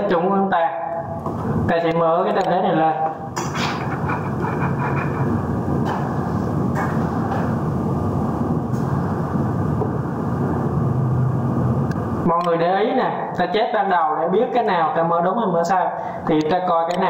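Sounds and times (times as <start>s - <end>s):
mechanical rumbling: 1.0s - 12.4s.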